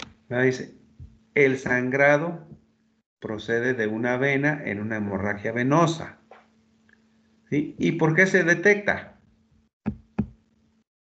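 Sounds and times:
faint steady hum: 0.0 - 10.8.

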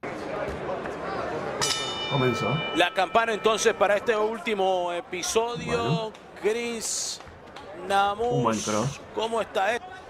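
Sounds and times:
arena crowd murmur: 0.0 - 1.8, 4.2 - 10.0
boxing ring bell ringing: 1.6 - 4.4.

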